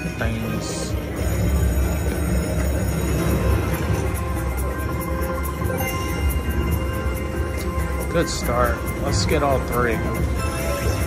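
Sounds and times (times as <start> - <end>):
slot machine bonus music: 0.0 - 11.0.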